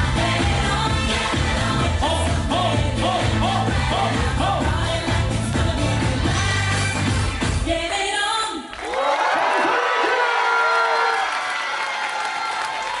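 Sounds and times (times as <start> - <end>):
pop dance music with heavy beat: 0.0 - 8.6
crowd cheering: 8.7 - 13.0.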